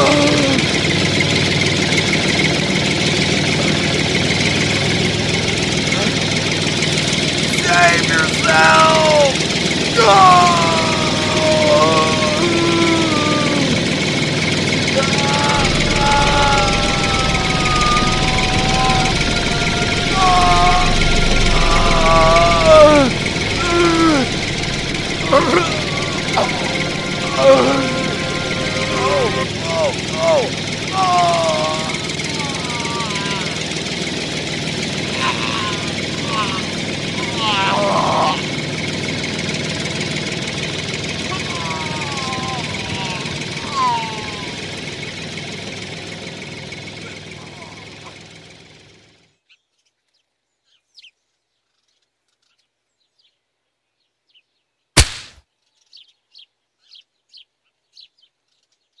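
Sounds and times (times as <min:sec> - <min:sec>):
person making wordless calls: 0:00.0 - 0:00.9, 0:05.8 - 0:06.4, 0:07.4 - 0:34.0, 0:35.0 - 0:38.6, 0:41.3 - 0:44.7, 0:47.1 - 0:48.2
tractor engine running: 0:00.0 - 0:49.3
sharp click: 0:55.0 - 0:55.4.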